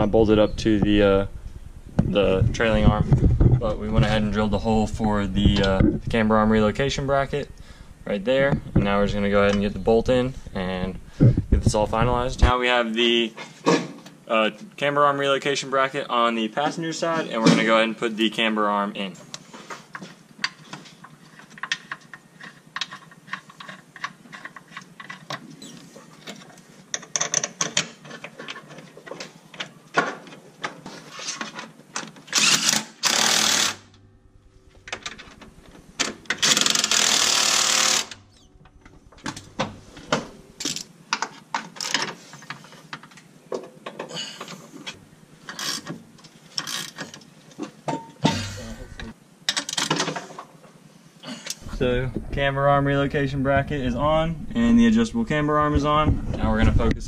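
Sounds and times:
cordless impact driver running: 32.4s - 33.9s, 36.4s - 38.2s.

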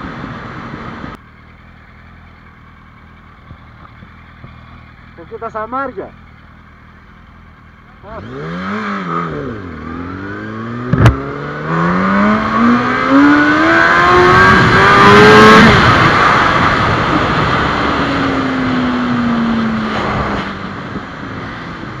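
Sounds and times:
motorcycle engine revving: 1.4s - 22.0s.

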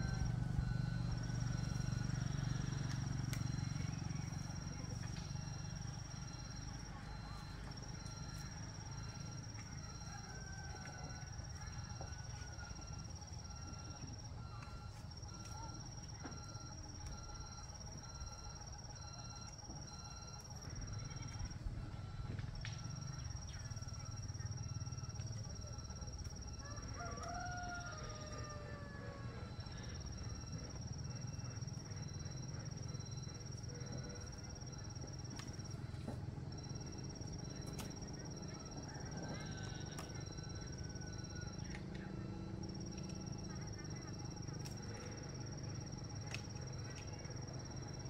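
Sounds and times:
distant rooster crowing: 9.4s - 14.7s, 26.0s - 31.2s, 38.0s - 43.4s.

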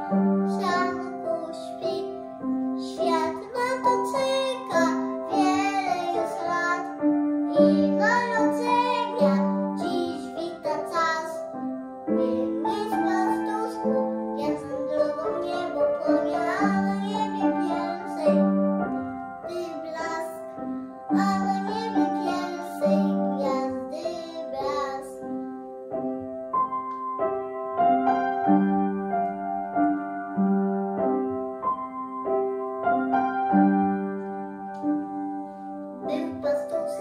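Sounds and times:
boy singing a carol: 0.0s - 11.6s, 12.2s - 18.5s, 19.5s - 25.3s, 36.0s - 37.0s
upright piano: 0.0s - 37.0s.

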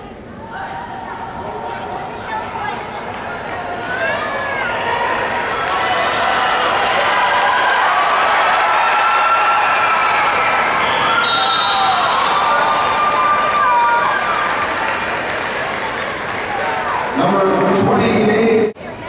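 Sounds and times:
crowd yelling and cheering: 0.0s - 19.0s
referee's whistle: 10.8s - 12.8s.

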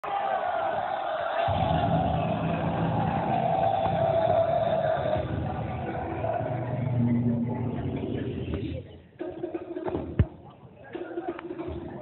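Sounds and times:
audience murmur: 10.3s - 12.0s.

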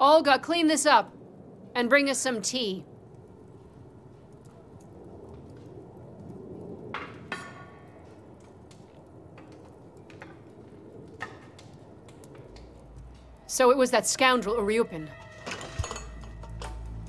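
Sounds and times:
dishes clinking: 15.4s - 16.8s.

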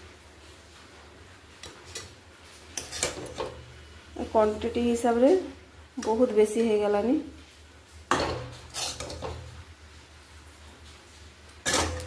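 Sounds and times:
spatula scraping steel: 2.7s - 3.6s, 8.1s - 9.6s, 11.6s - 12.0s
metal spatula clanking on pot: 2.8s - 3.6s, 8.1s - 9.6s, 11.6s - 12.0s.

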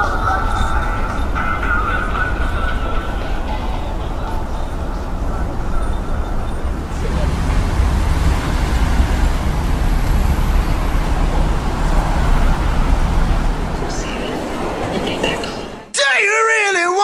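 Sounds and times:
street traffic: 0.0s - 16.0s.

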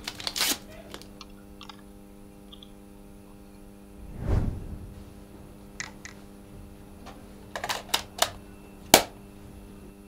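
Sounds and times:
faint steady hum: 0.8s - 10.0s.

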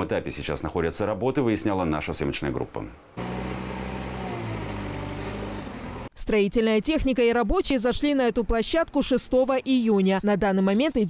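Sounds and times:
diesel engine running: 3.2s - 6.1s.

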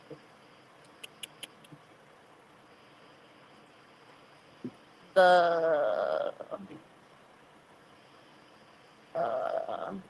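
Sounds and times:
short faint clicks: 0.8s - 1.8s.

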